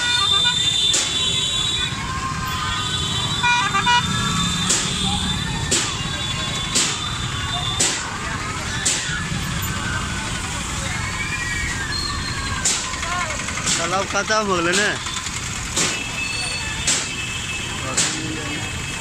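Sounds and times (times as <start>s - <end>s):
crowd voices: 0.0s - 19.0s
motorcycle and traffic noise: 0.0s - 19.0s.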